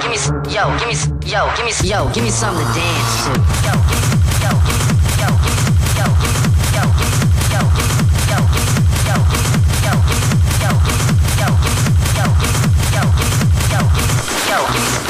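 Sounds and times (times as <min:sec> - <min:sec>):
heavy techno kick drum: 0:01.8 - 0:15.0.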